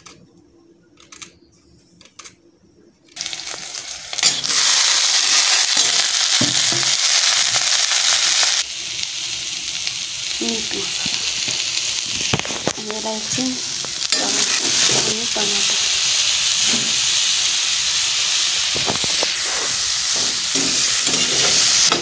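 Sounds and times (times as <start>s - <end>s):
vegetables sizzling in hot oil: 3.2s - 22.0s
metal spoon stirring in pan: 18.7s - 22.0s.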